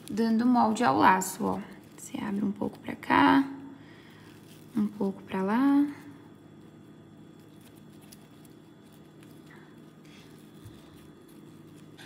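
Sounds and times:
ribbon rustling and crinkling: 0:00.0 - 0:03.2, 0:03.9 - 0:12.0.

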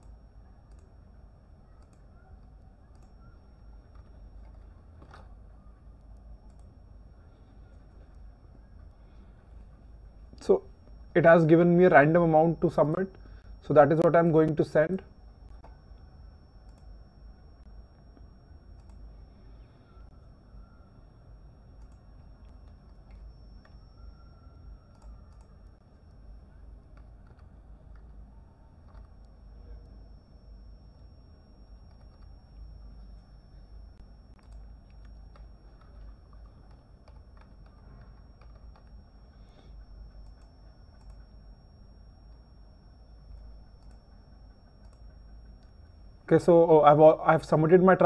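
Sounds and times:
keyboard typing: 0:00.0 - 0:20.8, 0:21.4 - 0:48.0
steady low hum: 0:00.0 - 0:48.0
thin high whine: 0:00.0 - 0:48.0
mouse clicks: 0:01.8 - 0:03.4.

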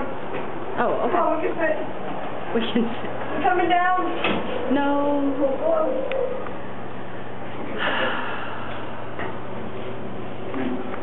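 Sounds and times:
low hum: 0:00.0 - 0:11.0
breathy burst of air: 0:07.2 - 0:09.2.

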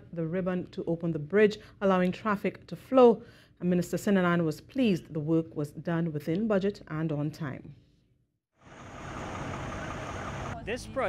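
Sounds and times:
highway traffic noise: 0:08.6 - 0:10.8.

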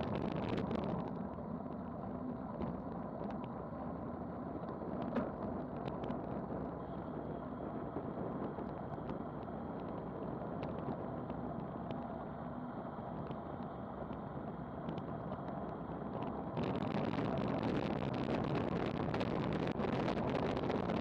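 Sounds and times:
wind rush on microphone: 0:00.0 - 0:12.2, 0:13.1 - 0:21.0
bike tyres on asphalt: 0:00.0 - 0:21.0.

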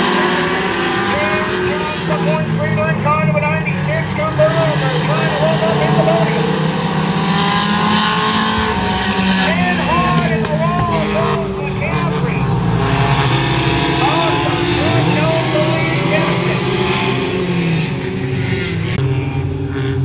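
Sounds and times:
race car engines at full throttle: 0:00.0 - 0:20.0.

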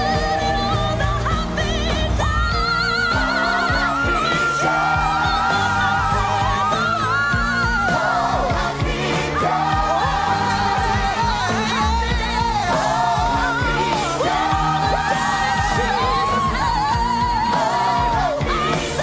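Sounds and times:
band playing: 0:00.0 - 0:19.0
solo voice singing with vibrato: 0:00.0 - 0:19.0
choir singing: 0:03.0 - 0:19.0.

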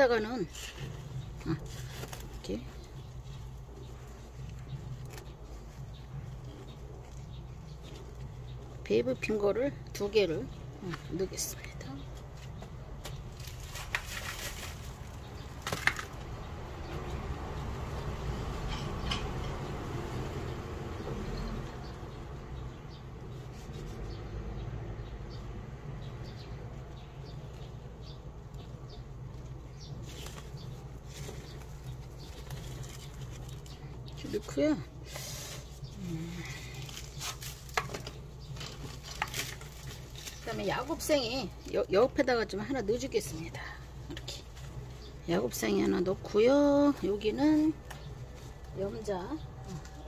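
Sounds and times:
hands rustling and scraping soil: 0:00.0 - 0:50.0
steady low rumble: 0:00.0 - 0:50.0.

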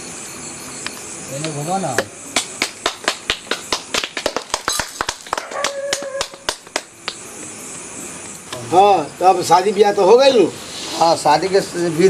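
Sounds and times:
brief steady tone: 0:00.0 - 0:02.0.

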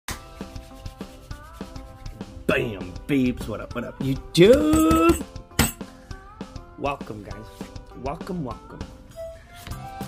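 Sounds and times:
quiet background music: 0:00.1 - 0:10.0
hands rubbing together: 0:00.3 - 0:02.2.

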